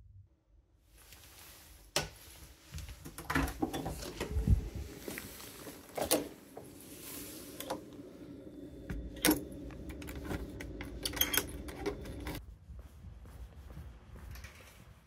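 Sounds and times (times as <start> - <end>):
keys jangling: 9.2 - 12.4.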